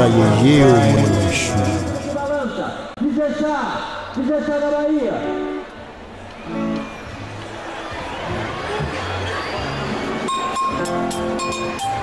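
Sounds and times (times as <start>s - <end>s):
sharp percussion strikes: 0.0s - 2.7s.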